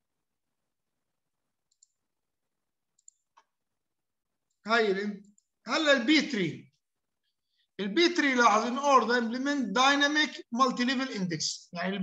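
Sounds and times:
computer mouse clicks: 1.6 - 2.1, 2.9 - 3.6.

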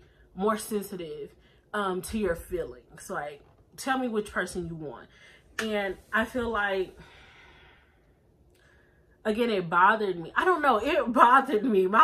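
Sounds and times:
woman breathing in: 7.0 - 9.2.

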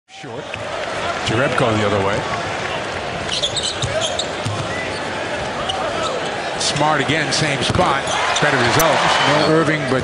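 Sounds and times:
arena crowd noise: 0.1 - 10.0.

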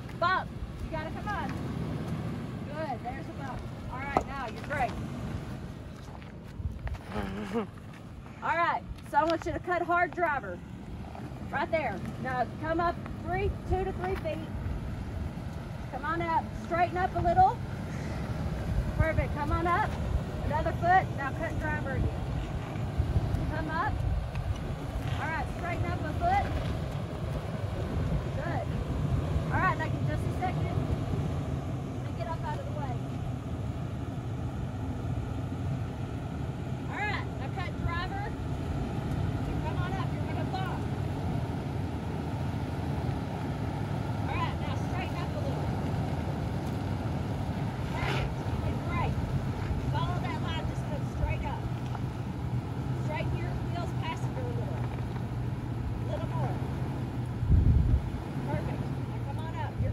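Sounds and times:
engine running low: 0.0 - 59.9.

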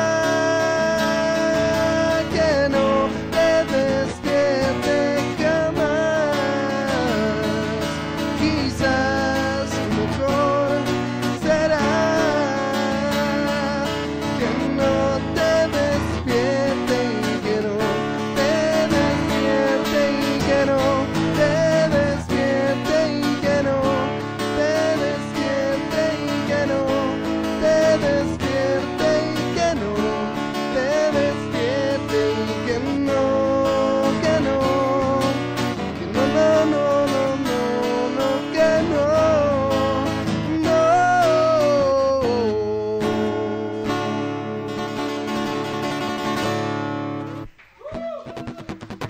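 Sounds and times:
strummed acoustic guitars: 0.0 - 47.6, 48.3 - 49.0.

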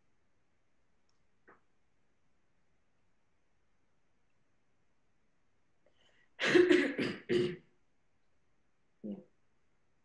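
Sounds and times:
person clearing throat: 6.4 - 7.7.

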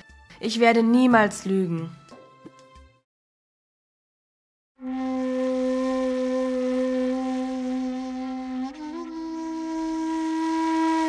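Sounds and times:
breathy flute note: 4.8 - 11.0.

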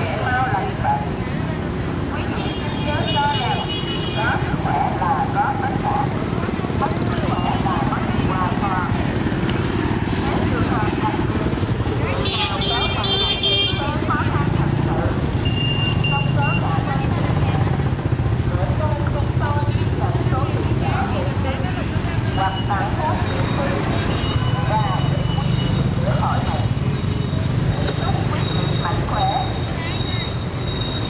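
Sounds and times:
people talking: 0.0 - 30.5
motorbikes passing close: 0.0 - 31.0.

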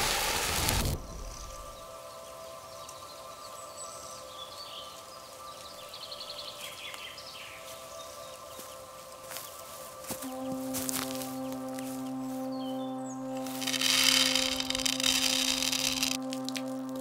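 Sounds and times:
drone of held musical notes: 0.0 - 17.0
birds chirping: 0.1 - 17.0.

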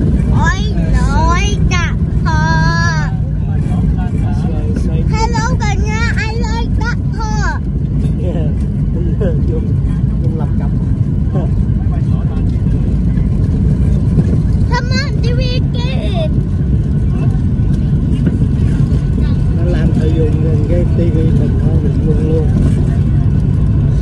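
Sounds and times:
airliner engines rumbling: 0.0 - 24.0.

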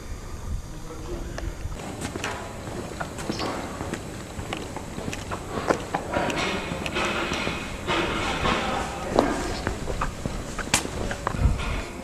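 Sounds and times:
footsteps on paved street: 1.7 - 12.0.

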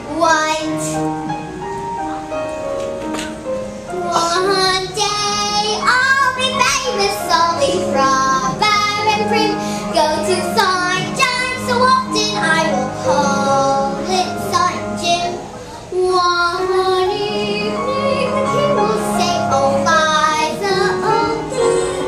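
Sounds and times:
girl singing: 0.1 - 1.0, 3.9 - 22.0.

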